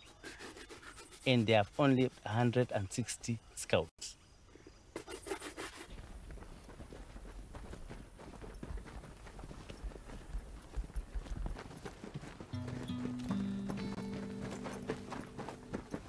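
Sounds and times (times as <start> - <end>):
boots walking on dirt: 5.9 - 16.0
music with low held notes: 12.6 - 16.0.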